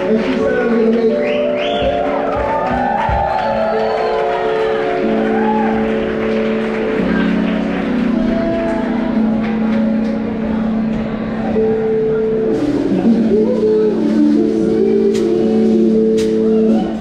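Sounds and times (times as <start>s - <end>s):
funk band playing chords: 0.0s - 17.0s.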